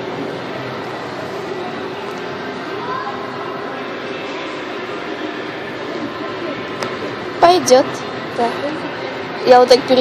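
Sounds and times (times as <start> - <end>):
faint distant voices: 0.0 - 10.0
indoor crowd din: 0.0 - 10.0.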